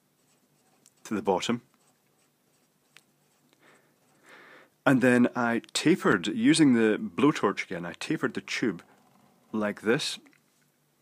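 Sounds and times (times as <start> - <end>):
pen strokes on paper: 0.0 - 4.2.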